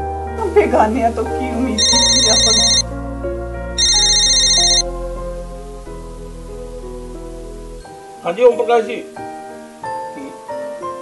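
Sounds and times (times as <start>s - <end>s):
background music: 0.0s - 11.0s
electronic telephone ringing: 1.8s - 2.8s, 3.8s - 4.8s.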